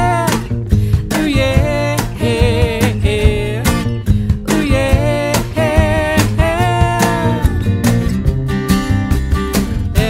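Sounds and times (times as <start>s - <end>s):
acoustic guitar strumming: 0.0s - 10.0s
drum kit beat: 0.0s - 10.0s
upright bass: 0.0s - 10.0s.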